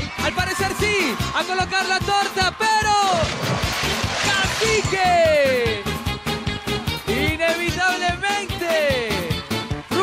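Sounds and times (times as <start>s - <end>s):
upbeat show music: 0.0s - 10.0s
big water splash: 3.1s - 5.0s.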